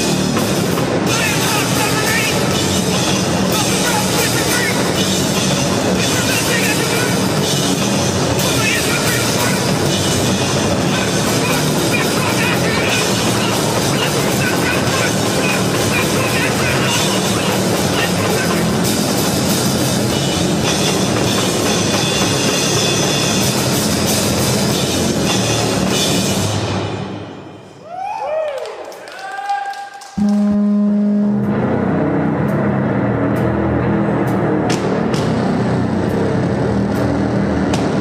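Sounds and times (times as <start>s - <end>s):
heavily distorted bass: 0.0s - 27.2s, 30.2s - 38.0s
pounding drums: 0.0s - 27.4s
crashing cymbals: 0.0s - 27.7s.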